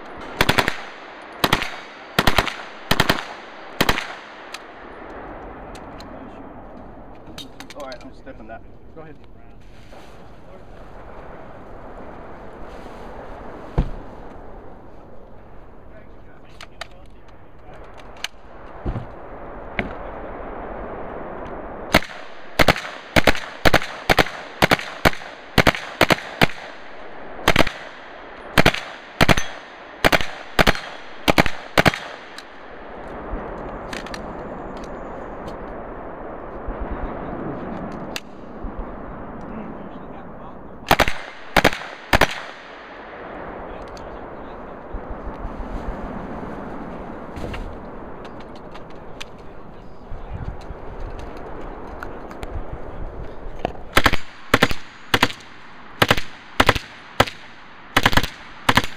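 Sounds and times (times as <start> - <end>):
submachine gun firing bursts: 0.3 - 4.4, 21.9 - 26.8, 27.4 - 32.3, 40.9 - 42.6, 54.0 - 58.9.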